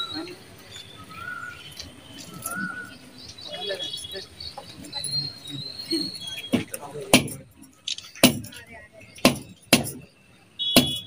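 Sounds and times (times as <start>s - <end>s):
indistinct background voices: 0.0s - 10.1s.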